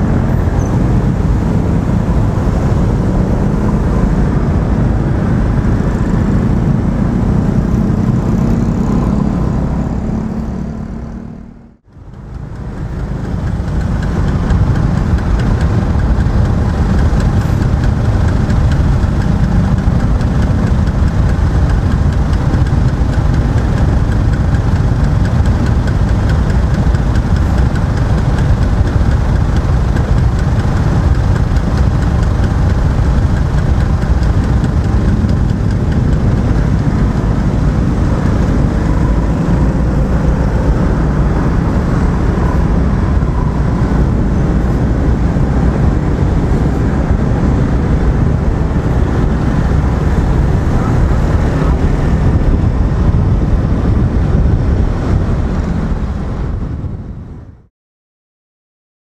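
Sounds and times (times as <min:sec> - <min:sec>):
engines idling in traffic: 0:00.0 - 0:57.6
scooter engine and traffic: 0:00.0 - 0:57.7.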